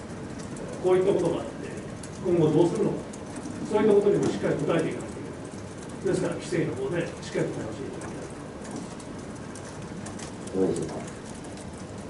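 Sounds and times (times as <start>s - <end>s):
steady room noise: 0.0s - 12.0s.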